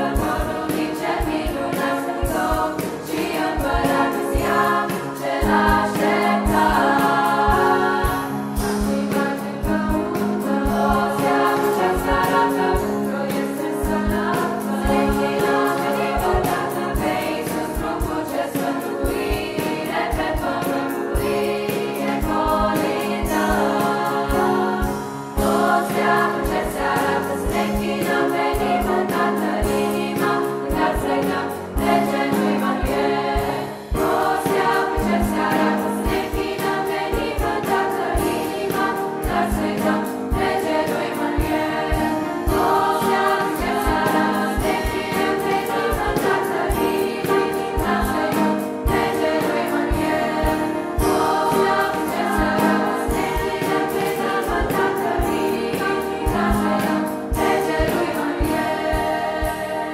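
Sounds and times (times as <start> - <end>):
men's choir singing carol: 0.0 - 59.9
steady rhythmic beat: 0.0 - 59.9.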